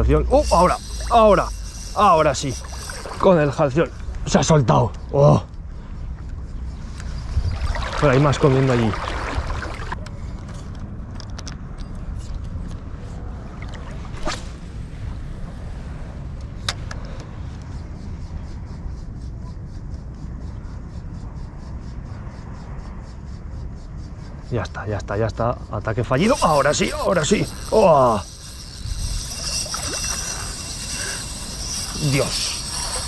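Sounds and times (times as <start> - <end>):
fishing reel ticking: 0.0 - 5.1, 6.4 - 8.5, 26.0 - 33.0
outdoor background noise: 0.0 - 33.0.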